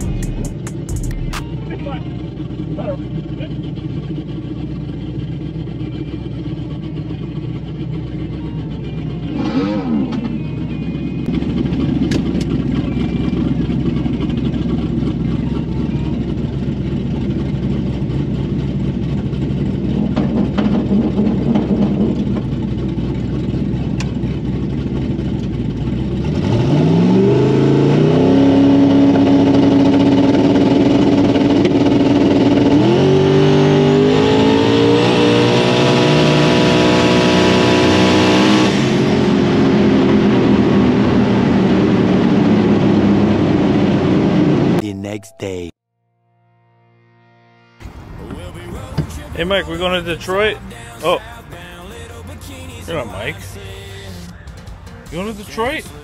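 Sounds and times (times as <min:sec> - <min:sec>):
race car engine: 0:00.0 - 0:45.7, 0:47.8 - 0:56.0.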